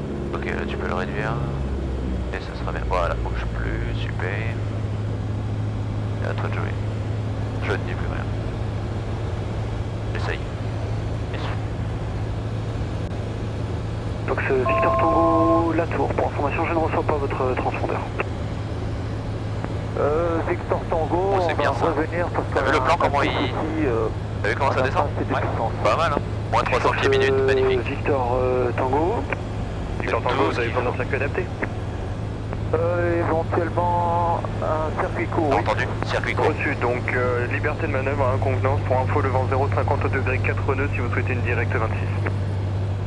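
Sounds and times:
aircraft engine droning: 0.0 - 43.0.

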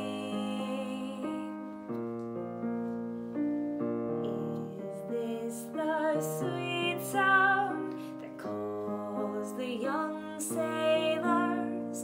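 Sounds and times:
digital piano playing slow chords: 0.0 - 12.0.

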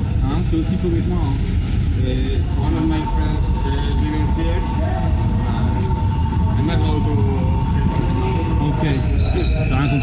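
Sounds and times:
escalator low rumble: 0.0 - 10.0
people's voices: 0.0 - 10.0.

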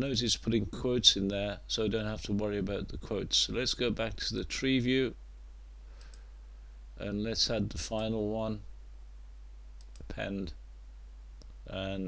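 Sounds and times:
low electrical hum: 0.0 - 12.0
computer mouse clicks: 6.0 - 6.3, 9.8 - 10.2.

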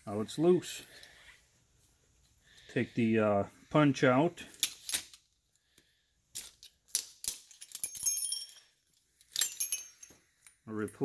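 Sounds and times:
metal jangling rattles: 7.2 - 10.2.

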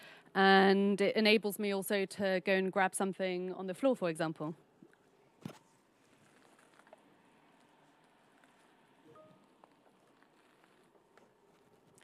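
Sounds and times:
brief faint tone: 9.0 - 9.5.

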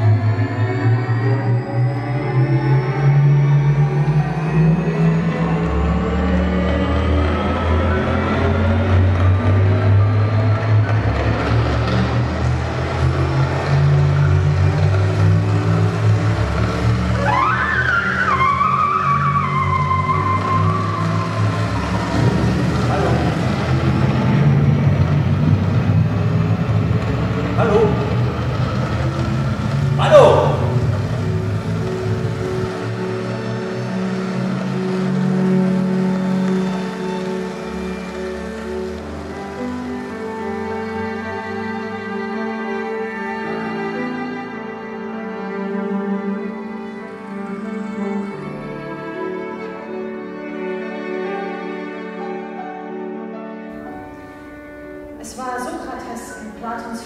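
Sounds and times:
electronic low drone: 0.0 - 41.8
high squealing tone: 17.2 - 23.4.

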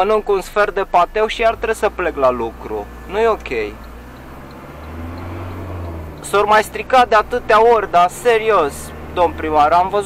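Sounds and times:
road noise inside cab: 0.0 - 10.0
van engine running: 0.4 - 10.0.

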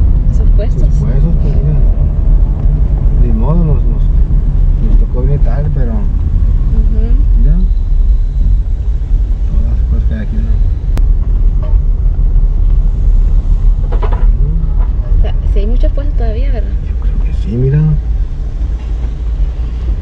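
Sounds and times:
car driving slowly: 0.0 - 20.0.

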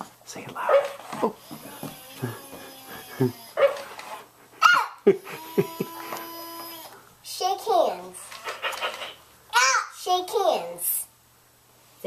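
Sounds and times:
toy motor whirring: 5.4 - 7.0.

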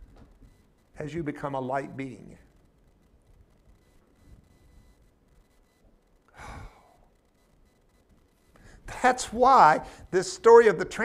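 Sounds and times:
man exhaling sigh: 6.3 - 7.0.

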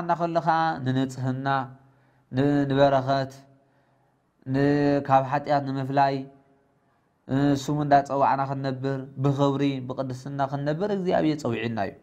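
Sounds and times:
man preaching in intoned phrases: 0.0 - 3.5, 4.4 - 6.4, 7.3 - 12.0.

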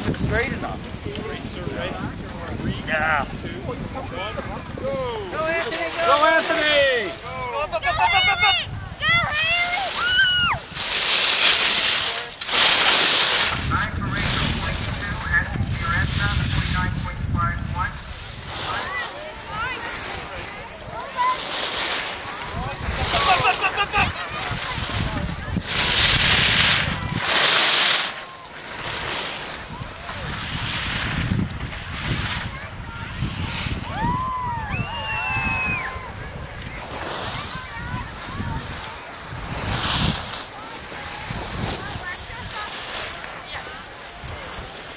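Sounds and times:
low wind rumble: 0.0 - 6.0, 7.1 - 12.0, 12.7 - 42.6
ski edges scraping snow: 0.0 - 44.9.

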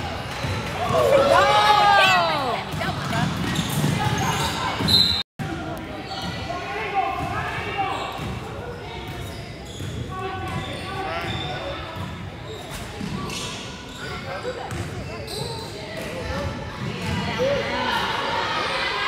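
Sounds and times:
spectators chatting and shouting: 0.0 - 19.0.

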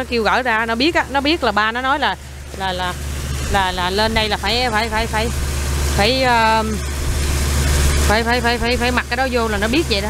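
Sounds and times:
woman speaking: 0.0 - 6.8, 8.0 - 10.0
boat engine drone and rushing: 0.0 - 10.0.

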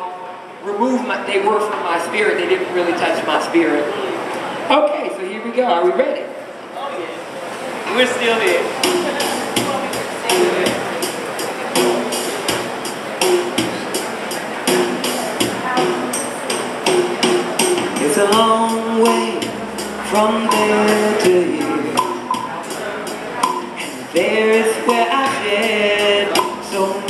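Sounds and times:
gourd shaker beat: 8.4 - 27.0
person singing: 17.7 - 27.0.

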